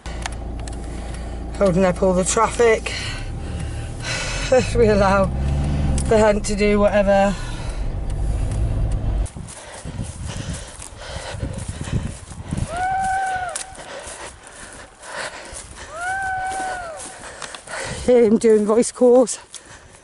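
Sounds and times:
car engine rumbling: 0.0s - 17.6s.

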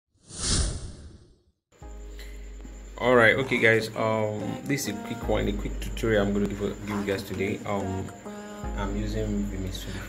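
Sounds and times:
whoosh: 0.2s - 1.5s.

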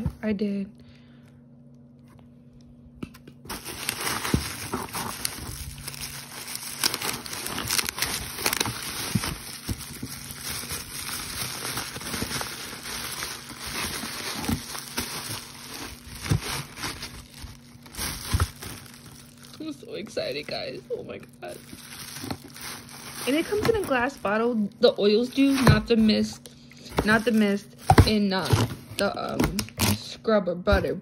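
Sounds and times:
bubble wrap crinkling and crackling: 3.4s - 30.1s.

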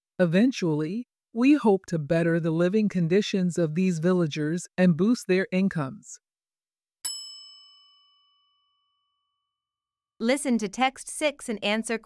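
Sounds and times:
bell-like chime: 7.0s - 9.6s.

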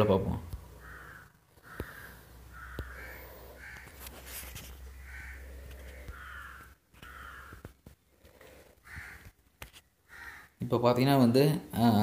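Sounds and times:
bird harsh calls: 0.7s - 4.2s, 4.9s - 9.4s, 10.0s - 10.6s.

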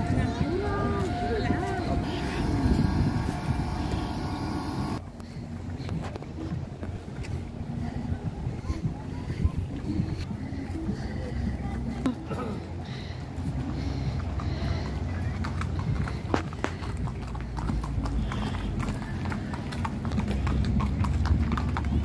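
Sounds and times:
wind on microphone: 0.0s - 5.0s, 5.9s - 11.0s
crowd voices: 0.0s - 22.0s
faint distant voices: 0.0s - 22.0s
steady hum: 0.8s - 5.1s.

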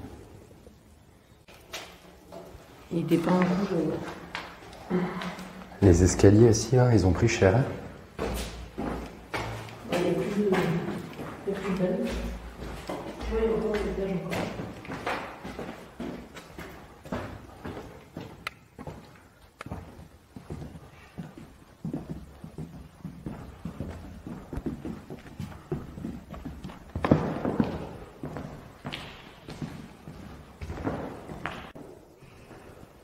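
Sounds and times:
footsteps on rubble: 8.1s - 31.8s.

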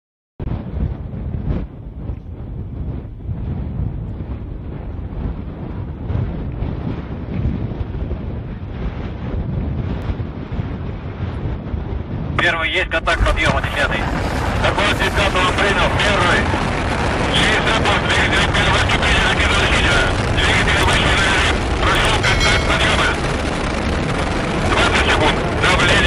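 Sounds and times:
wind buffeting microphone: 0.4s - 26.0s.

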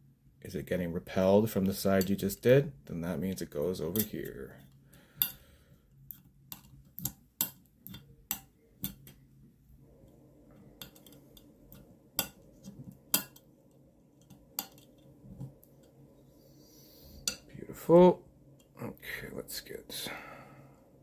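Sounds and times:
magnets clicking on metal plates: 3.9s - 4.3s, 10.8s - 12.4s, 14.2s - 15.0s.

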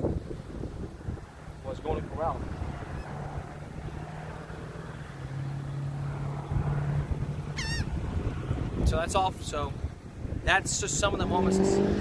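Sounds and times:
traffic hum: 0.0s - 12.0s
wind on microphone: 0.0s - 12.0s
wavering bird call: 7.5s - 8.0s.

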